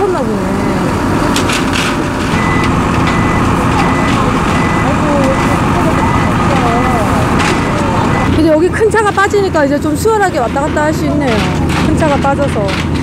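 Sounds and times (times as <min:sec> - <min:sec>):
distant voices: 0:00.0 - 0:13.0
truck engine running: 0:00.0 - 0:13.0
high beep: 0:02.4 - 0:07.1, 0:07.7 - 0:08.4.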